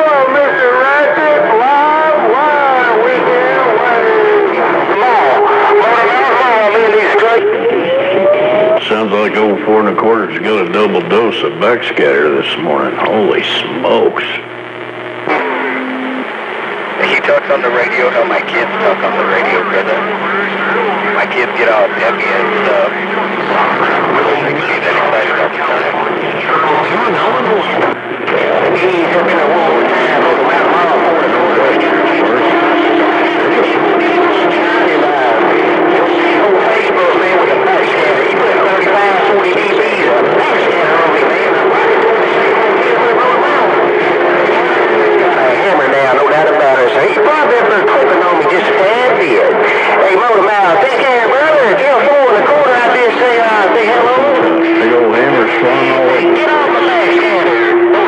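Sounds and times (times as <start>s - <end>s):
garbled radio voices: 0.0s - 58.0s.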